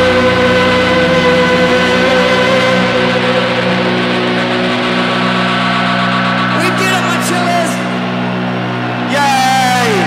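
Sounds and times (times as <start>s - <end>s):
rock band chord ringing out: 0.0s - 10.0s.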